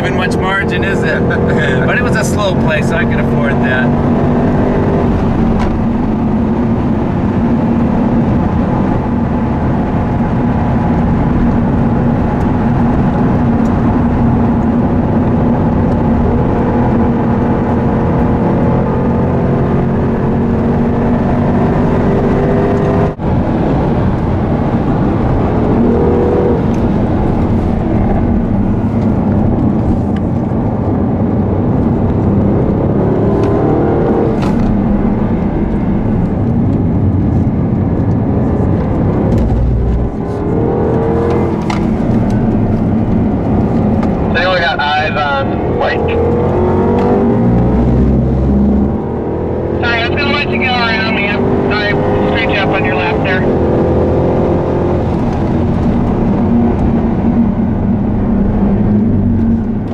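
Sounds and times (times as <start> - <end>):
car engine accelerating and braking: 0.0 - 59.9
road and tyre noise: 0.0 - 59.9.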